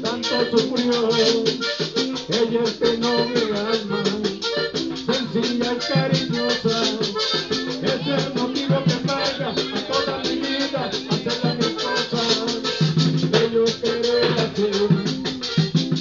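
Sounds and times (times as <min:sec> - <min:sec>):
button accordion melody: 0:00.0 - 0:16.0
fast even percussion: 0:00.0 - 0:16.0
guitar: 0:00.0 - 0:16.0
hand drum: 0:00.0 - 0:16.0.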